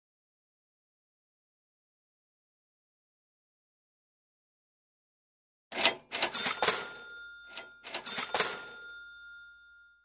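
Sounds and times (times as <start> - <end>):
cash register cha-ching: 5.7 - 10.0.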